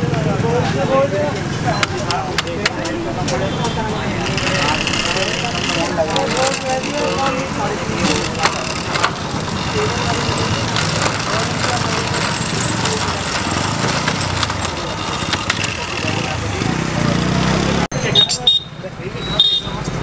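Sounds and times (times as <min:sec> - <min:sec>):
traffic: 0:00.0 - 0:20.0.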